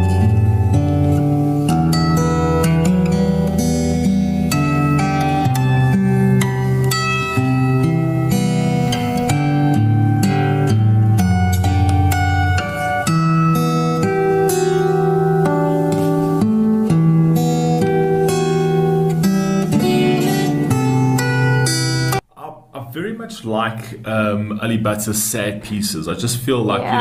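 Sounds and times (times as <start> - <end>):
fingerstyle acoustic guitar: 0.0 - 22.3.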